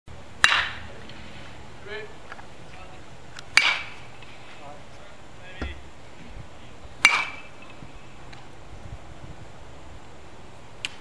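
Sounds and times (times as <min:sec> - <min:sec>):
baseball bat cracking a ball: 0:00.4 - 0:00.8, 0:03.5 - 0:04.1, 0:07.0 - 0:07.5.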